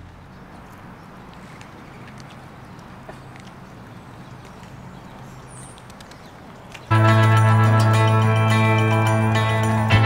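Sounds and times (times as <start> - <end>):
faint irregular clicks: 1.3 - 3.6, 4.4 - 6.9
music: 6.9 - 10.0.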